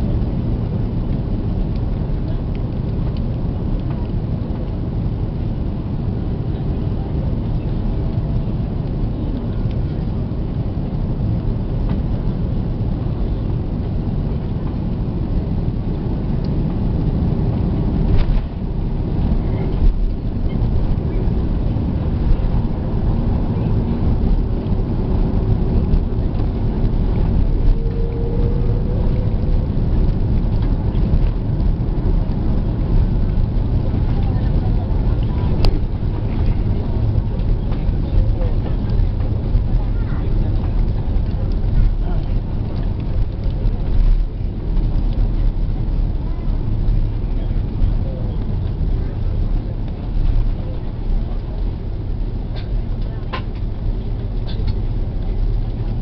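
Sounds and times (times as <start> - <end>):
aircraft cabin low rumble: 0.0 - 56.0.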